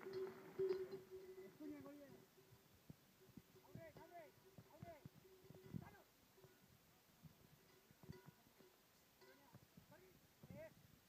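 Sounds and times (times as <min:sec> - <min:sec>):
herding calls: 0:00.0 - 0:02.6.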